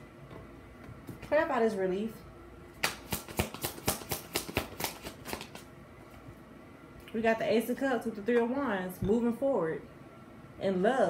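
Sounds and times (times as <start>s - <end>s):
cards being shuffled: 2.8s - 5.7s.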